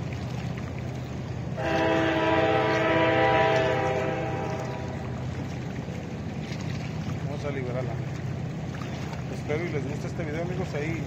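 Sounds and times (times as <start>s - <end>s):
low rumble: 0.0s - 9.3s
horn sounding a chord: 1.6s - 5.0s.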